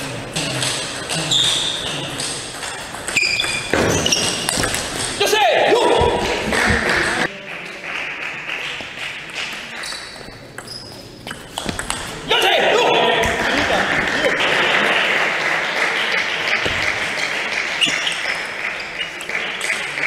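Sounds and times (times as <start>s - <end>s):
crowd shouting and cheering: 5.2s - 7.3s, 12.3s - 18.6s
applause: 6.4s - 9.8s, 13.4s - 20.0s
table tennis ball clicking: 9.9s - 12.1s.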